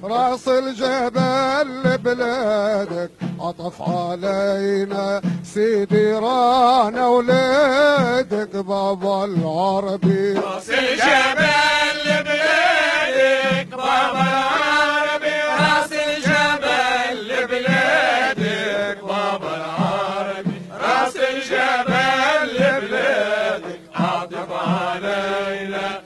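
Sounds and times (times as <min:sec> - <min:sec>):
men chanting a praise song: 0:00.0 - 0:26.0.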